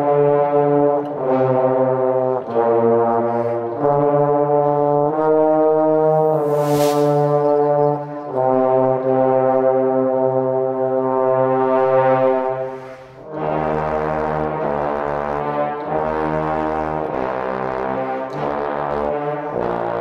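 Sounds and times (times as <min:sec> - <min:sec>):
trombone choir playing chords: 0:00.0 - 0:20.0
brief high hiss: 0:06.3 - 0:07.7.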